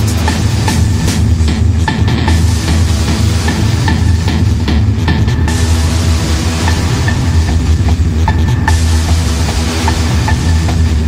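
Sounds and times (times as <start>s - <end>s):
distorted bass line: 0.0s - 11.0s
hardstyle electronic dance music: 0.0s - 11.0s.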